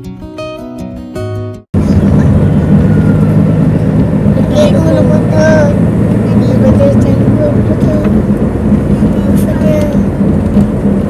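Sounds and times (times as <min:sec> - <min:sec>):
people talking: 0:01.8 - 0:08.2, 0:09.0 - 0:10.1
car engine and tyres rumbling: 0:01.8 - 0:11.0.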